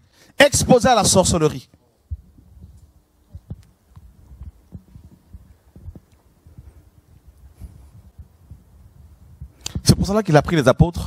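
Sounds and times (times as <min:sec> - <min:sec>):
microphone handling noise: 0:00.6 - 0:01.4, 0:02.0 - 0:10.2.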